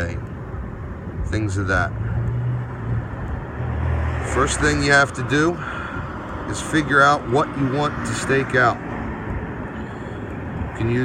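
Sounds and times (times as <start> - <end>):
low outdoor rumble: 0.0 - 11.0
man's voice: 4.2 - 5.7, 6.4 - 8.9, 10.7 - 11.0.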